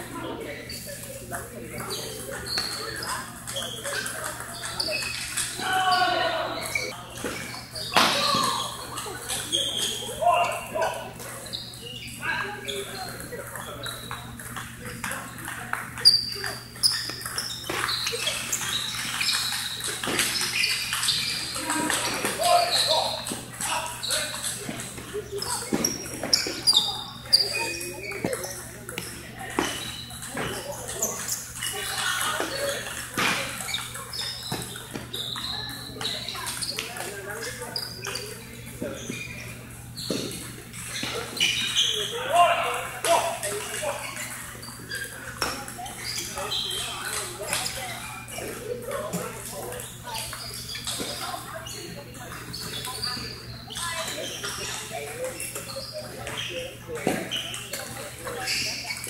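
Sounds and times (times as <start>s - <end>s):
indistinct voices: 0.0s - 59.0s.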